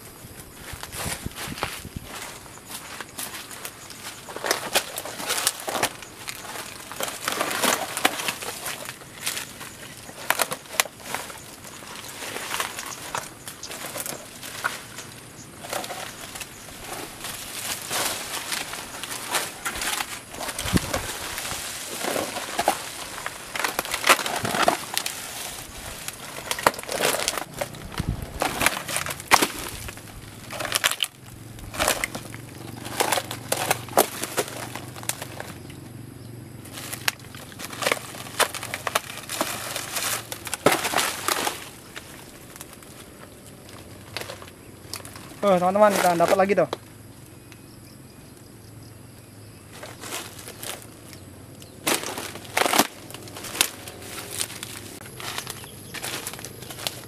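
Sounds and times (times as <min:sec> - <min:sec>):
dry palm fibre crackling and snapping: 0:00.0 - 0:35.8, 0:36.6 - 0:47.6, 0:49.7 - 0:57.0.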